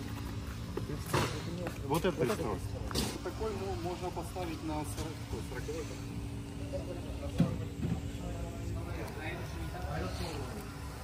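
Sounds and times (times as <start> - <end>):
faint voices talking: 0.2 - 11.0.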